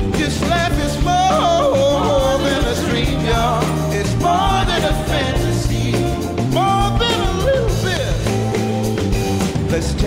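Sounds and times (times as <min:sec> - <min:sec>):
person singing: 0:00.0 - 0:08.5
rock band playing live: 0:00.0 - 0:10.0.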